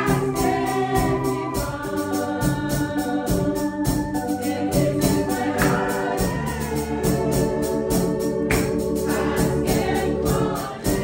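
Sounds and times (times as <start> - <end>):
organ chords: 0.0 - 11.0
women singing a hymn: 0.0 - 11.0.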